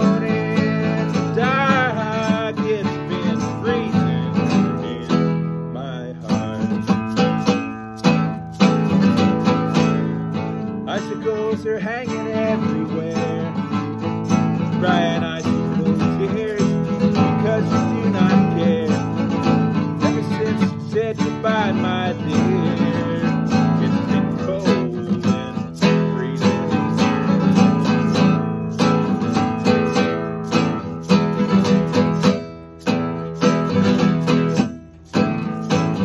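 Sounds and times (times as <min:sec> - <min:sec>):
classical guitar strumming: 0:00.0 - 0:36.0.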